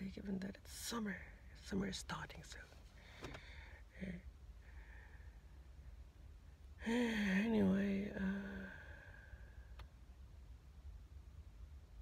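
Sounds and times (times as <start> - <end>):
faint low rumble: 0.0 - 12.0
faint click: 9.7 - 10.0.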